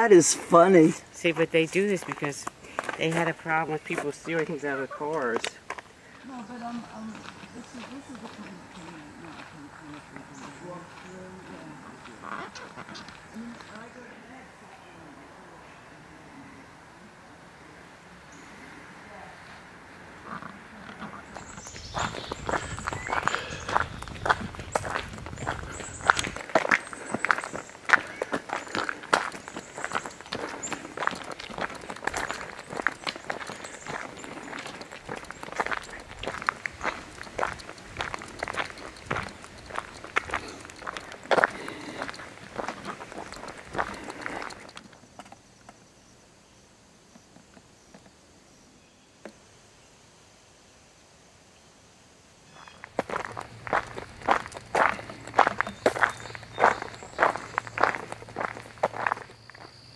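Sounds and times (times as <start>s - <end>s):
footsteps crunching on gravel: 0.1s - 13.9s, 21.0s - 44.8s, 52.6s - 59.8s.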